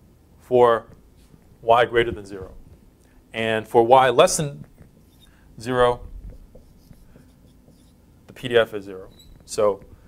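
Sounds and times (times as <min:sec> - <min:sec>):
marker writing on a whiteboard: 0:04.2 - 0:10.0.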